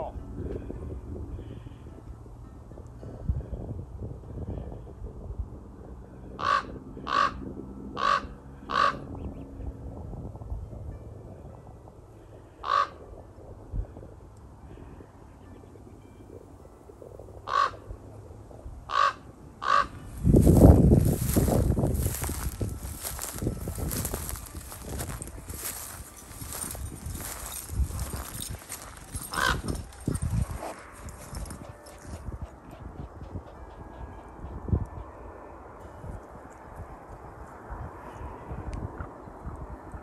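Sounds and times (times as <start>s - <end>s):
raven calling: 6.4s - 7.4s, 8.0s - 9.1s, 12.5s - 13.0s, 17.4s - 17.9s, 18.9s - 20.0s, 25.5s - 30.0s.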